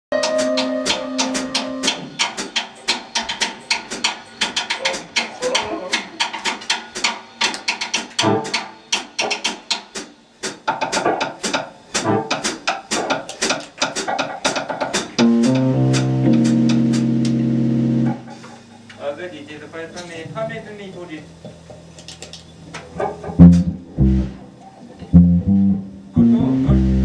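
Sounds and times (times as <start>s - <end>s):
keyboard chord: 0.1s - 2.0s, 15.2s - 19.0s, 25.1s - 27.0s
drum stick hits: 0.2s - 17.4s
bass drum thuds: 23.3s - 24.4s.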